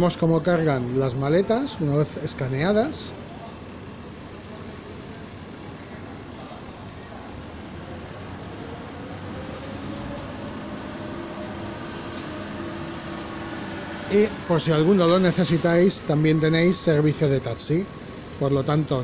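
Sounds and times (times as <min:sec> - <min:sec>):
mechanical hum: 0:00.0 - 0:19.0.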